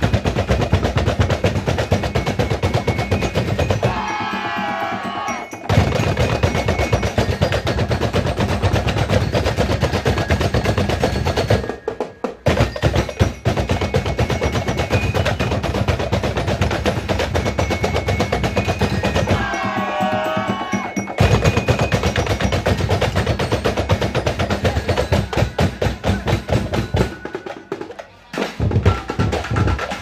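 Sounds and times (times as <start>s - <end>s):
plastic barrel drums beating: 0.0s - 30.0s.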